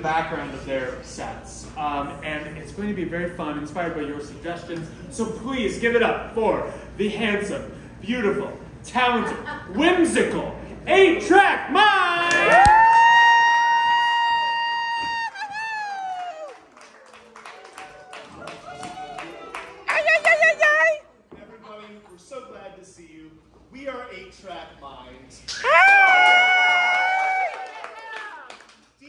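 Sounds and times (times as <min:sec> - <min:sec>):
high voice whooping: 0:11.8 - 0:16.6
crowd cheering: 0:11.9 - 0:21.0, 0:25.5 - 0:28.8.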